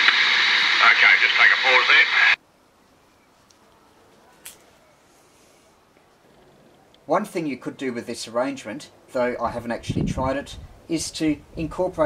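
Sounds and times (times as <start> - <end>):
man's voice on radio: 0.0 - 2.4
radio hiss: 0.0 - 2.4.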